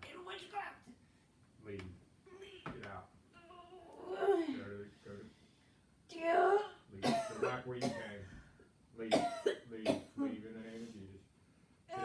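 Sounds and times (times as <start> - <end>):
person coughing: 7.0 - 8.2, 9.1 - 10.0.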